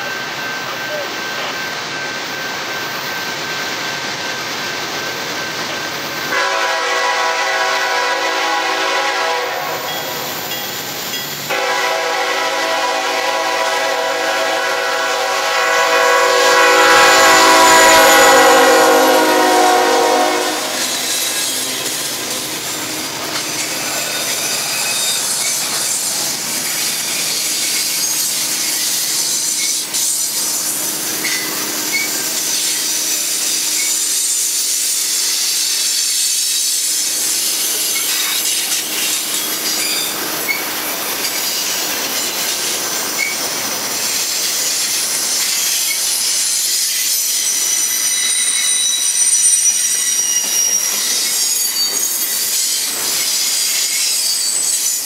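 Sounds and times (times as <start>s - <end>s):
train wheels on rails: 0.0s - 55.0s
train horn blasts: 6.3s - 10.4s, 11.5s - 22.4s
thin wheel squeal: 20.6s - 55.0s.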